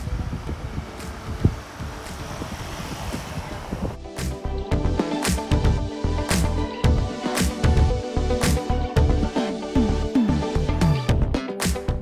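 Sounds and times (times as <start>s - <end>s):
wind buffeting microphone: 0.0s - 4.1s.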